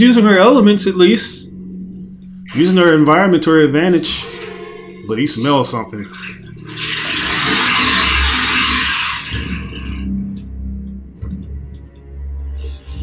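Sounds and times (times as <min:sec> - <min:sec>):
film score music: 0:00.0 - 0:13.0.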